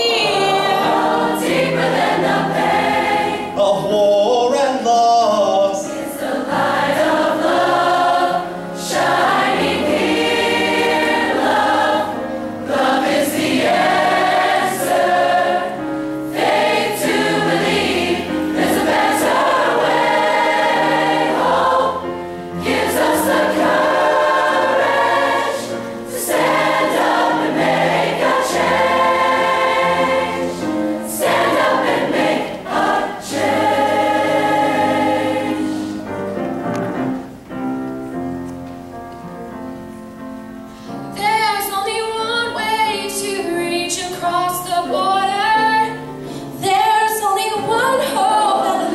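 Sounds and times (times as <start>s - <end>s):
mixed choir singing: 0.0s - 3.9s, 5.3s - 36.2s, 46.6s - 48.9s
piano accompaniment: 0.0s - 48.9s.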